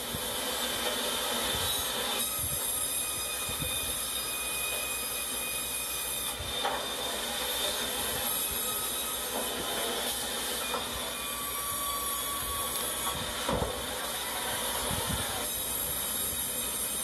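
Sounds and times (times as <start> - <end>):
sawmill machinery running: 0.0 - 17.0
high thin whining tones: 1.7 - 17.0.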